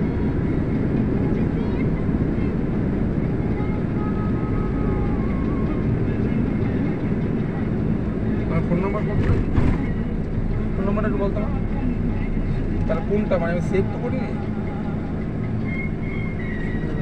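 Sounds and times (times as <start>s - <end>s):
road and engine noise inside vehicle: 0.0s - 17.0s.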